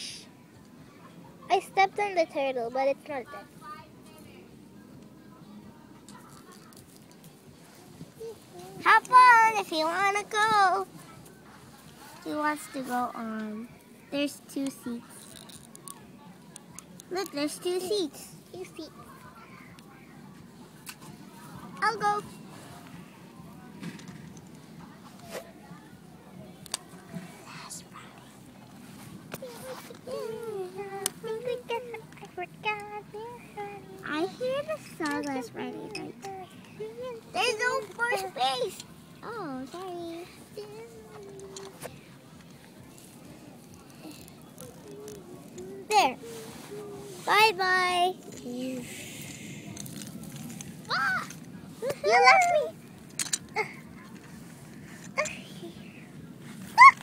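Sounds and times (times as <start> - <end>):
child making high-pitched sounds: 50.9 - 52.7, 56.8 - 57.0.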